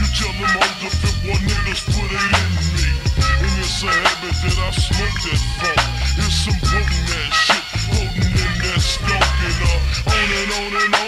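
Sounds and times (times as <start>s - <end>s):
rapping over a beat: 0.0s - 11.0s
slowed hip hop beat with heavy bass: 0.0s - 11.0s.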